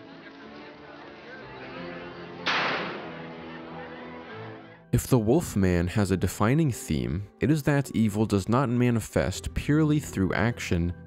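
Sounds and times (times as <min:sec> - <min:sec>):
quiet background music: 0:00.0 - 0:11.0
sharp rifle shot: 0:02.4 - 0:03.1.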